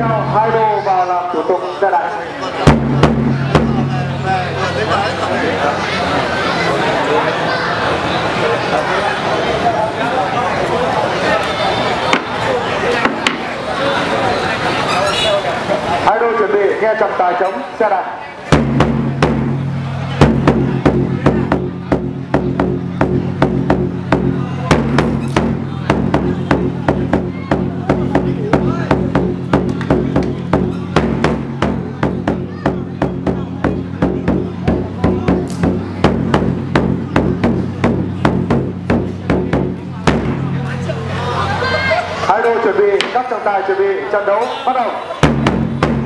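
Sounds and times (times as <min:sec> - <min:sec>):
drumming in a steady fast beat: 0:00.0 - 0:00.8, 0:02.6 - 0:05.3, 0:18.5 - 0:41.9, 0:45.2 - 0:46.0.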